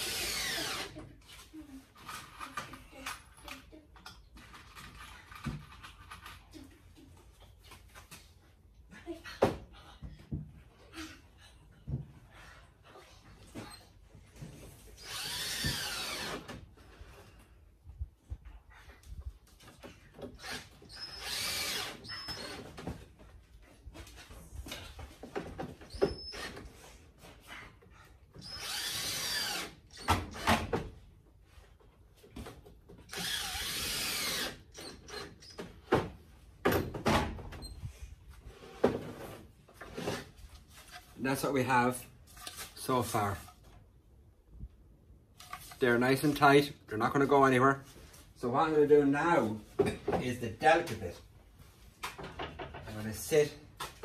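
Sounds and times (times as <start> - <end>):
cordless drill driving screws: 0.0 - 1.0, 15.0 - 16.6, 20.4 - 22.6, 28.4 - 30.6, 33.1 - 35.6.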